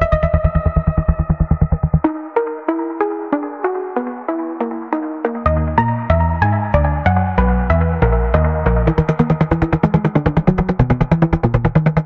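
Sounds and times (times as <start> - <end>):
dark techno music: 0.0 - 12.0.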